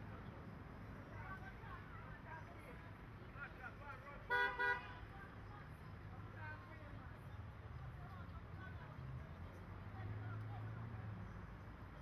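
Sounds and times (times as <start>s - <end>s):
vehicle horn toots: 4.3s - 4.9s.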